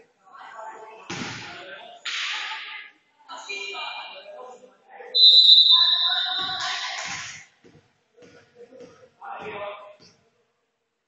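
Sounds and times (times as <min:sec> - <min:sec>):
referee's whistle blast: 0:05.2 - 0:06.9.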